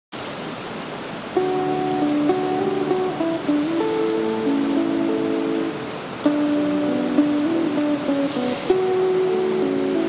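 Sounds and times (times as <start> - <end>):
running water rushing: 0.2 - 10.0
plucked guitar music: 1.3 - 10.0.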